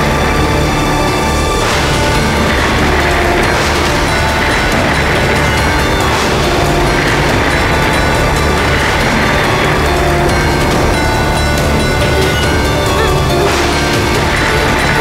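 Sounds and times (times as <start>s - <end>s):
background music score: 0.0s - 15.0s
deep low drone: 0.0s - 15.0s.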